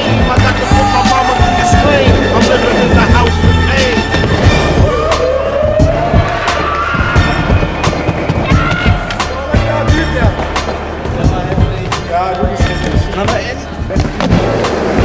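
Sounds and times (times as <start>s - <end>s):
music with beat and bass line: 0.0s - 15.0s
skateboard wheels rolling on concrete: 1.3s - 5.5s, 6.2s - 15.0s.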